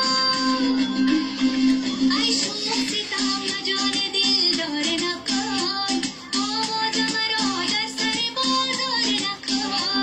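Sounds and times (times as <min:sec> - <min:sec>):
high voice singing dance song: 0:00.0 - 0:10.0.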